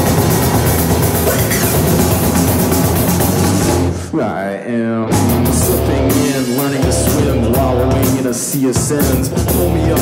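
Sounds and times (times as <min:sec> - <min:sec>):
electronic rock music with drums: 0:00.0 - 0:10.0.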